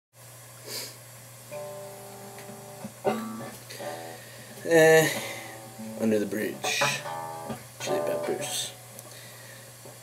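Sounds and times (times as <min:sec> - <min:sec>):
low steady hum: 0:00.2 - 0:10.0
acoustic guitar notes plucked: 0:01.5 - 0:09.0.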